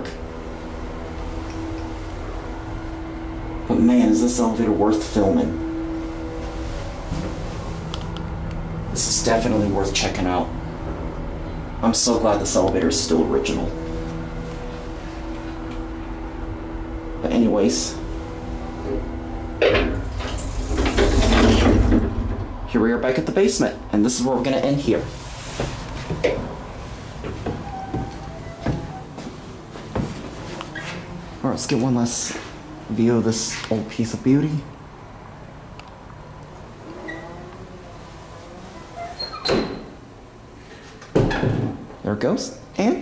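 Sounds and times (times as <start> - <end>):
elevator hum: 0.0 - 42.8
elevator door clattering open: 19.0 - 22.7, 25.7 - 29.2
door shutting with a thud: 41.1 - 41.8.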